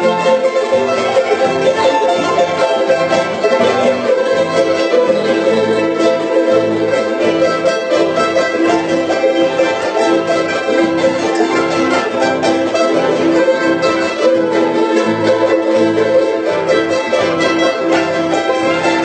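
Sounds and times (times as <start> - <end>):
ensemble of strummed strings: 0.0 - 19.0.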